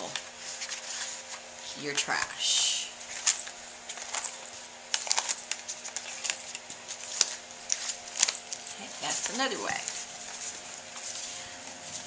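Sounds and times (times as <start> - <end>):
stiff pages flipping: 3.1 - 12.0.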